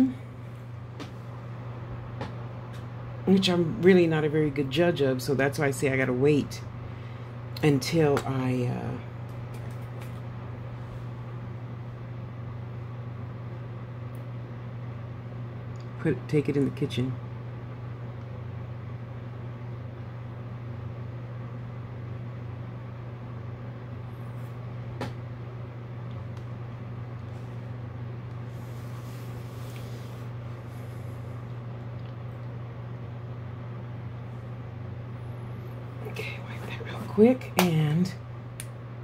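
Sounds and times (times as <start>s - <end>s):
low machine hum: 0.0s - 39.0s.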